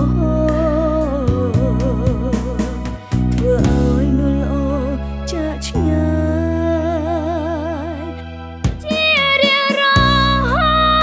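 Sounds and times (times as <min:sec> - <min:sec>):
bass and keyboard chords: 0:00.0 - 0:11.0.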